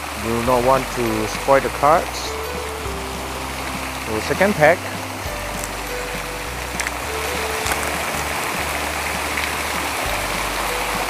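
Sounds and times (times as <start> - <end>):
soft background music: 0.0 - 11.0
water running down glass: 0.0 - 11.0
foil pack crinkling: 5.4 - 9.9.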